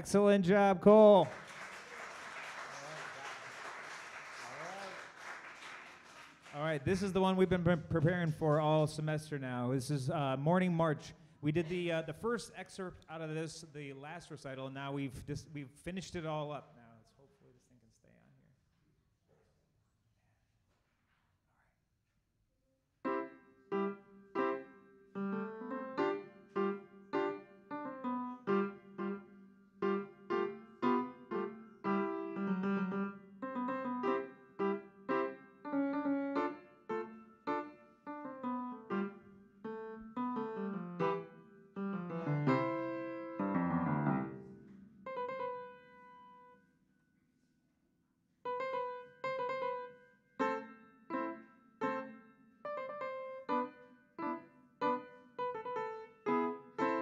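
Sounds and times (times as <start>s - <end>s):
piano march: 0.0s - 1.8s, 6.5s - 12.8s, 23.0s - 46.6s, 48.4s - 57.0s.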